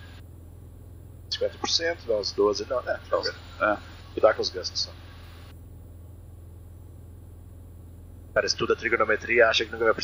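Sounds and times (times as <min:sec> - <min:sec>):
propeller aircraft engine drone: 0:00.0 - 0:10.0.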